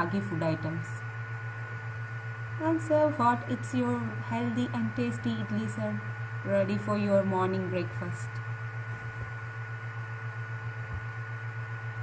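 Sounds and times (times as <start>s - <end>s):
steady low hum: 0.0s - 12.0s
thin high whine: 0.0s - 12.0s.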